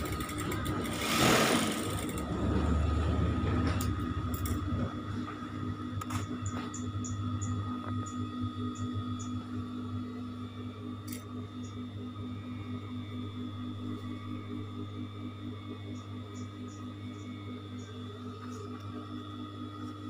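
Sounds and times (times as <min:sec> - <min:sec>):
sewing machine motor humming: 0:00.0 - 0:04.8.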